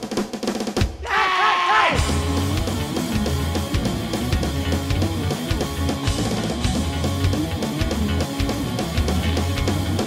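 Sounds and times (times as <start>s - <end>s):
driving drum beat: 0.0s - 10.0s
bass guitar: 1.9s - 10.0s
distorted electric guitar: 2.0s - 10.0s.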